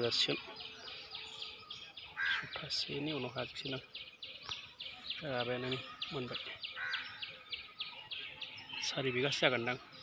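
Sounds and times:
birds chirping: 0.0 - 10.0.

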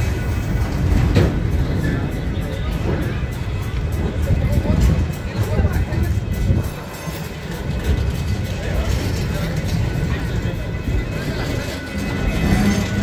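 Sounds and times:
train wheels rumbling on rails: 0.0 - 13.0.

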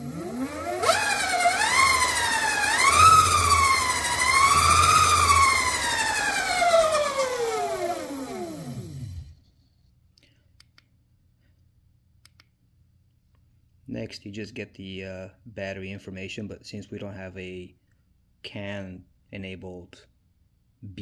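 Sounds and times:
electric bike motor whining: 0.0 - 9.4.

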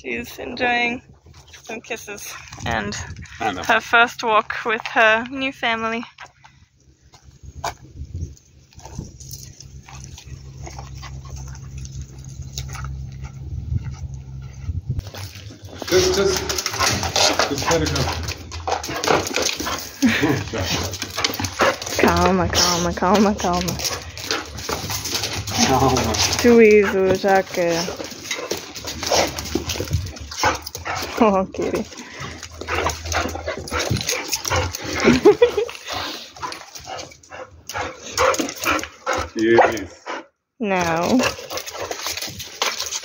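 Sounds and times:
dogs whining and yipping: 27.8 - 39.2.

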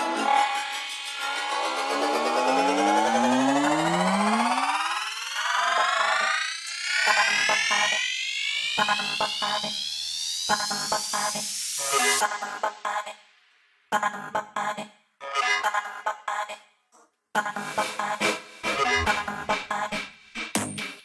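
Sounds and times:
synth tones sweeping upward: 0.0 - 10.9
chopped rhythmic stabs: 17.4 - 21.0.

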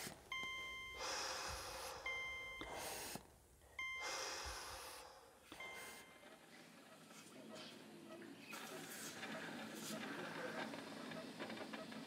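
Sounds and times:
patient monitor beeping: 0.0 - 7.1
slow heavy breathing: 0.8 - 3.3, 4.0 - 6.1.

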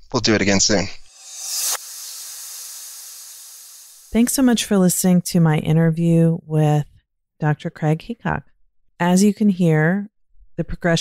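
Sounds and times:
airy whoosh hiss: 1.1 - 4.4.

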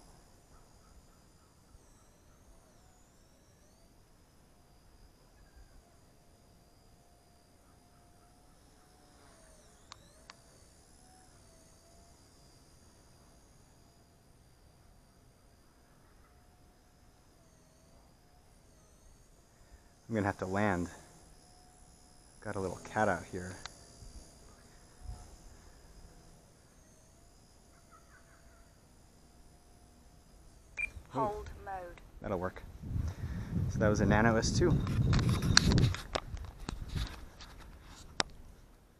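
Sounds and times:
distant rc helicopter motor whine: 0.0 - 38.9.

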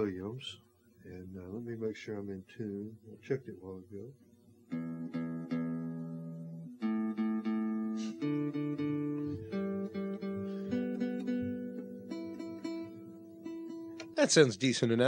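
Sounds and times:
acoustic guitar being tuned: 4.7 - 15.0.

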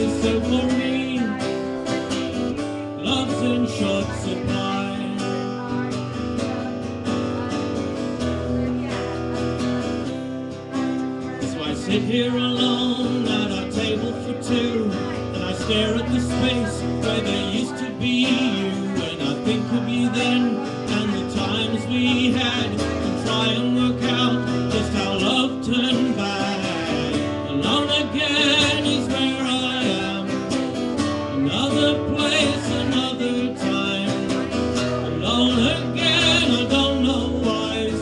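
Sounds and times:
acoustic guitar strumming: 0.0 - 38.0.

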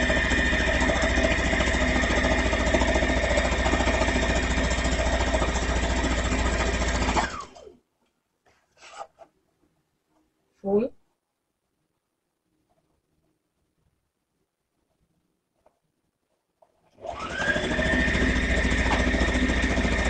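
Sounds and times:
sewing machine stitching: 0.0 - 7.8, 16.9 - 20.0.

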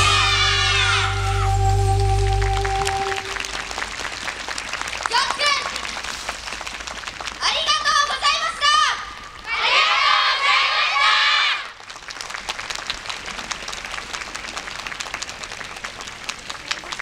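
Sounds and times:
children shouting together: 0.0 - 1.6
audience applause: 0.0 - 8.3, 11.7 - 17.0.

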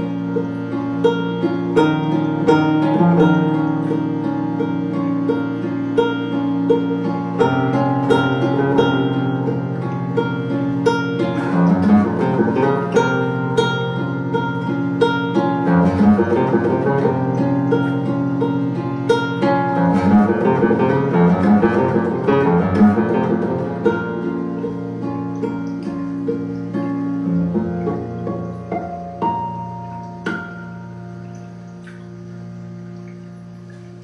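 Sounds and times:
guitar picked notes: 0.0 - 34.0.

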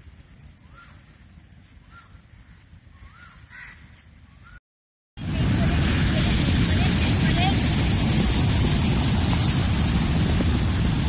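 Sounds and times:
bird calling: 0.6 - 1.1, 1.8 - 4.6.

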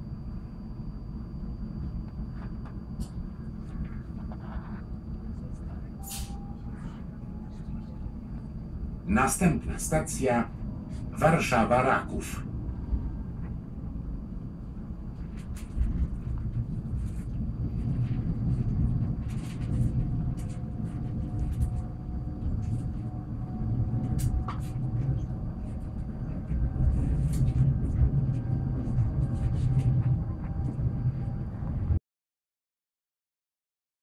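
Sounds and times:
faint high whine: 0.0 - 32.0
train wheels rumbling on track: 5.2 - 32.0.

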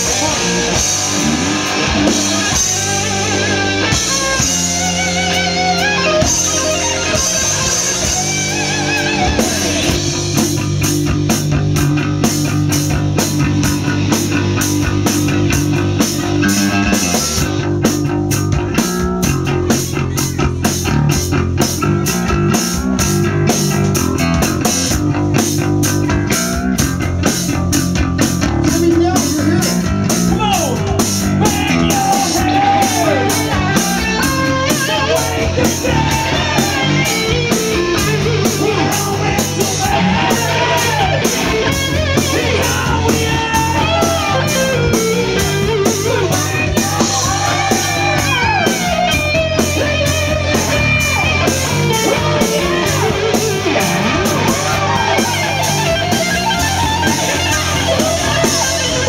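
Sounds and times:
driving cymbal beat: 0.0 - 59.0
rock band playing: 0.0 - 59.0
wavering lead guitar: 0.0 - 59.0.

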